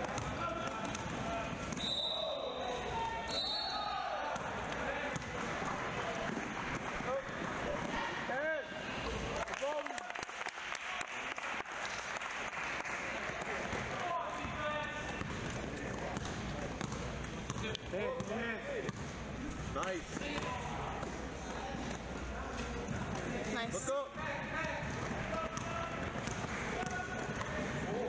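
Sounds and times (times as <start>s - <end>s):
basketball bouncing on wooden floor: 14.4s - 17.6s.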